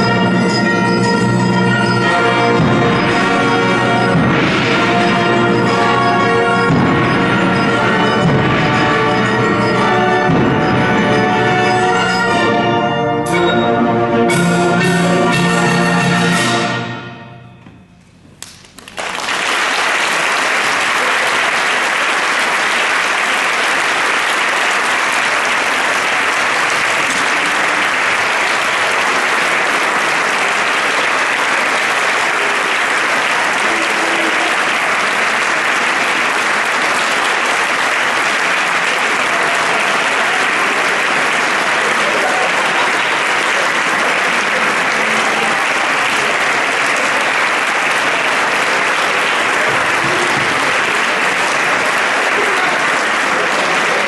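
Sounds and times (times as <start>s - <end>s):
audience applause: 0.0s - 12.3s, 18.4s - 54.0s.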